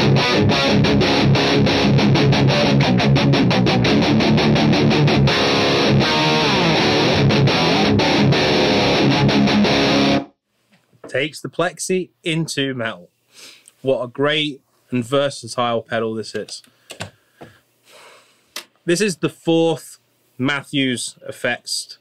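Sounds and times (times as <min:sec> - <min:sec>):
distorted electric guitar metal riff: 0:00.0 - 0:10.3.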